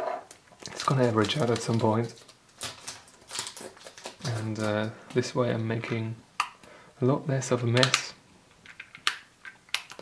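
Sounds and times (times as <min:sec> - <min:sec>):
plastic bottles rustling clicks: 0:00.6 - 0:04.8.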